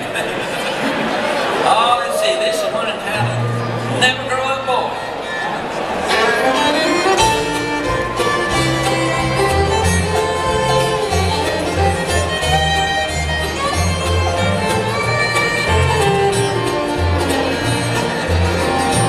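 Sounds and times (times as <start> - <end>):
bluegrass band playing: 2.5 - 19.0
fiddle lead: 2.7 - 19.0
upright bass walking line: 6.9 - 19.0.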